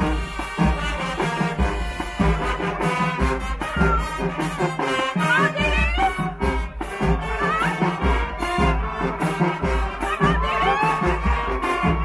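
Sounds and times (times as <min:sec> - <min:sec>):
brass melody: 0:00.0 - 0:12.0
drum beat: 0:00.0 - 0:12.0
marching band playing: 0:00.0 - 0:12.0.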